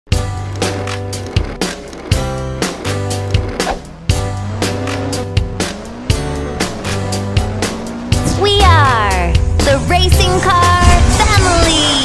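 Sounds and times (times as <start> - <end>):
upbeat children's song music: 8.2 - 12.0.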